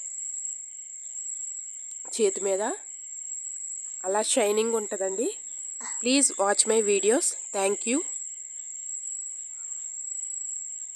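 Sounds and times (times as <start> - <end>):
high-pitched insect chirring: 0.0 - 10.9
person speaking: 4.1 - 8.0.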